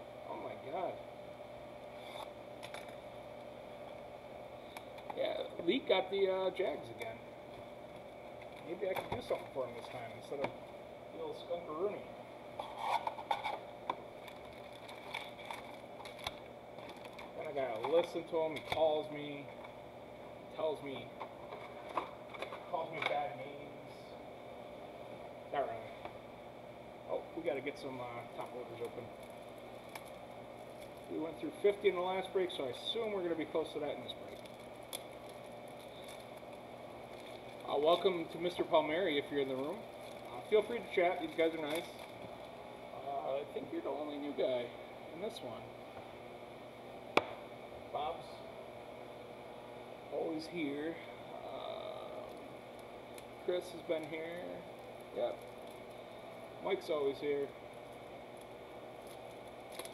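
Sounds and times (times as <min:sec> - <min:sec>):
steady low hum: 0:00.0 - 0:59.9
plastic wrap crinkling: 0:14.2 - 0:17.8, 0:29.1 - 0:31.2, 0:34.2 - 0:38.4, 0:39.4 - 0:42.5.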